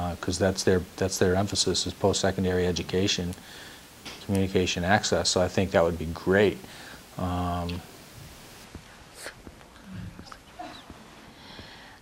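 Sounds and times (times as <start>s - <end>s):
soft breathing: 3.4s - 4.0s, 6.6s - 7.2s, 8.7s - 12.0s.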